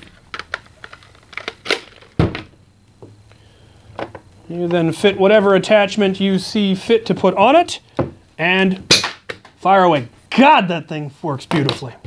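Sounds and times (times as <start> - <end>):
plastic parts clicking and knocking: 0.0 - 2.5
plastic thump: 2.2 - 2.5.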